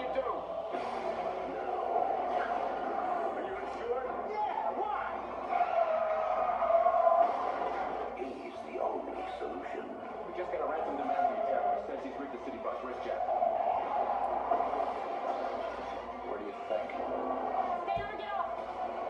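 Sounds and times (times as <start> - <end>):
muffled trailer soundtrack from speaker: 0.0 - 19.0.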